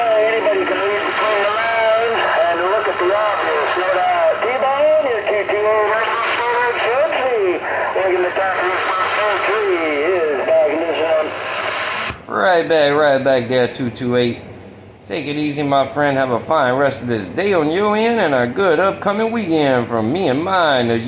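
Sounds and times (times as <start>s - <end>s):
voice over radio speaker: 0.0s - 14.0s.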